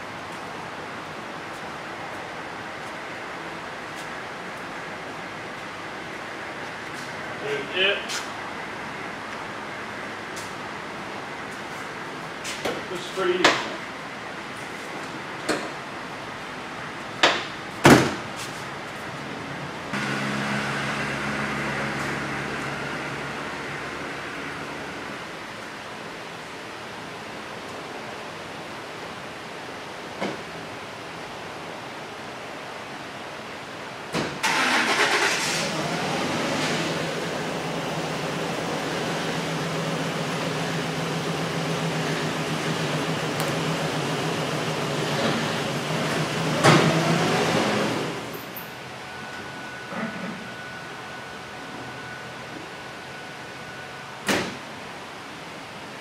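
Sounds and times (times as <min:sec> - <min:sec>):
truck engine running: 0:19.9 - 0:25.4, 0:34.4 - 0:52.1
pickup engine starting and idling: 0:34.3 - 0:51.2.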